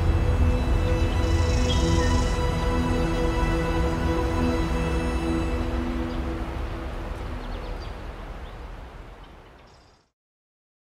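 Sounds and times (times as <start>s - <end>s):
low rumble: 0.0s - 4.2s.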